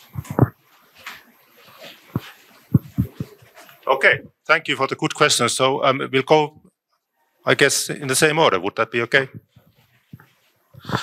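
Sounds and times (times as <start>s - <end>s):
person speaking: 0.0s - 0.6s, 2.1s - 6.6s, 7.4s - 10.2s
dull low thumps: 0.1s - 0.6s, 2.1s - 3.4s.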